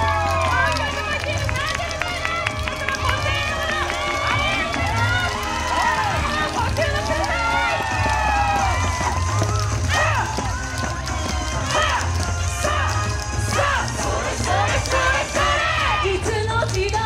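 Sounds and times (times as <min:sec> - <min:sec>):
crowd shouts and whoops: 0:00.0 - 0:16.3.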